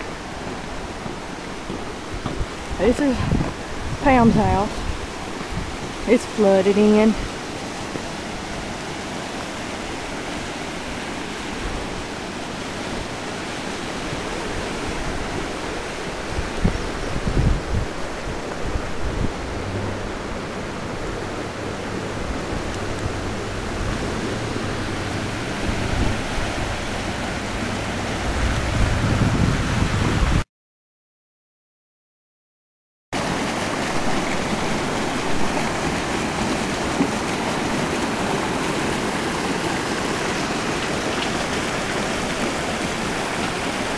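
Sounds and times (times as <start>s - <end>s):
floodwater rushing through ditch: 0.0s - 30.4s, 33.2s - 43.9s
wind gusts on microphone: 0.0s - 30.4s.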